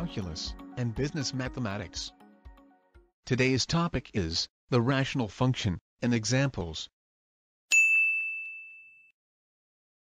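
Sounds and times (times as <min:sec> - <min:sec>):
bell-like ding: 0:07.7 - 0:09.2.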